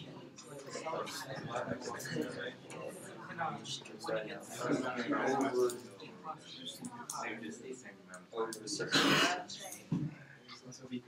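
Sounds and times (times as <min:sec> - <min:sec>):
students chattering: 0:00.0 - 0:11.0
person clearing throat: 0:08.9 - 0:09.4.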